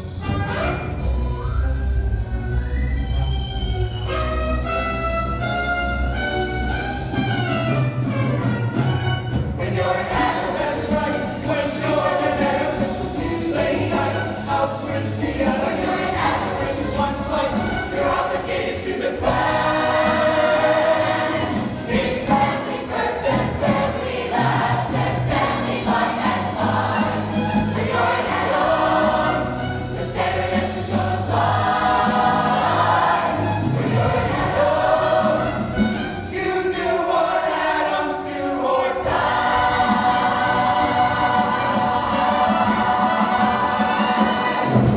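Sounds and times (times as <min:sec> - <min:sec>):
instrumental accompaniment: 0:00.0 - 0:37.4, 0:38.6 - 0:44.9
choir singing: 0:09.6 - 0:44.9.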